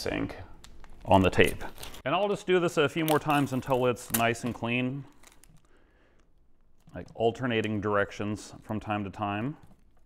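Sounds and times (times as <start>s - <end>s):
packing tape rustling: 0.6s - 2.1s, 3.1s - 7.1s.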